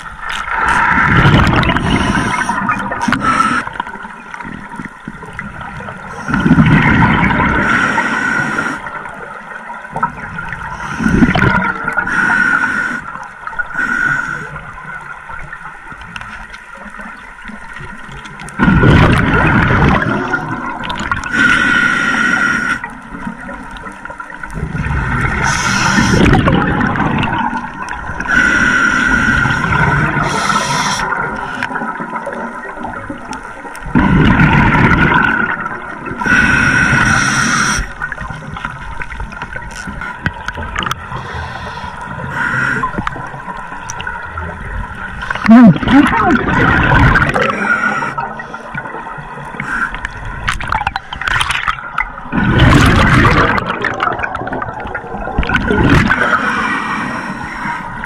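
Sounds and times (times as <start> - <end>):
gurgling exhaled bubbles: 0.0 - 12.2, 17.7 - 21.4, 22.8 - 56.7
hissing regulator inhalations: 1.8 - 3.8, 12.0 - 13.2, 21.3 - 22.9, 25.4 - 26.4, 28.3 - 31.8, 36.2 - 38.0, 41.1 - 43.0, 47.4 - 48.8.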